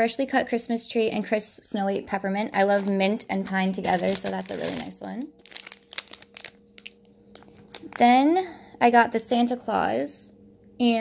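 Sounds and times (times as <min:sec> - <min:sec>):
faint steady hum: 0:00.0 - 0:11.0
plastic bags crinkling: 0:02.5 - 0:08.3.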